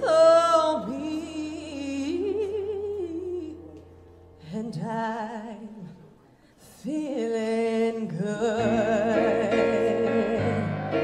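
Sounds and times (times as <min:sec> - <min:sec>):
woman singing with vibrato: 0:00.0 - 0:03.7, 0:04.4 - 0:06.0, 0:06.6 - 0:11.0.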